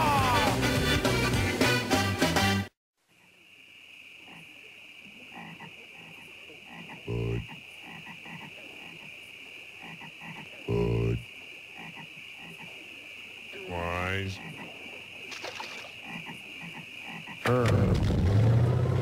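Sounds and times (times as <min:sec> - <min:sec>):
frogs croaking: 0:03.0 - 0:17.7
high-pitched swamp drone: 0:04.0 - 0:09.1, 0:09.8 - 0:19.0.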